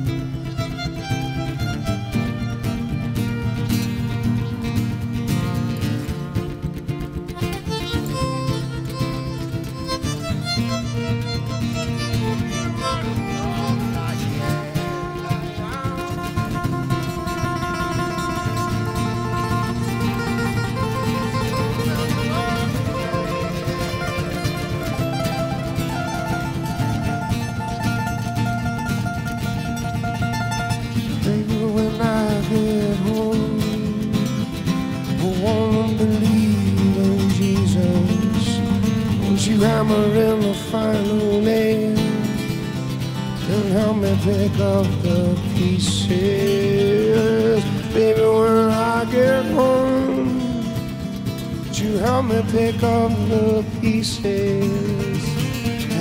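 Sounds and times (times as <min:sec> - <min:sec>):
acoustic guitar rhythm: 0:00.0 - 0:56.0
picked acoustic guitar lead: 0:00.0 - 0:56.0.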